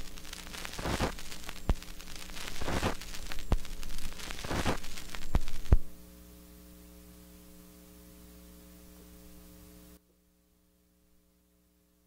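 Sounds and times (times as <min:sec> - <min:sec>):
mains hum with hiss: 0:00.0 - 0:12.0.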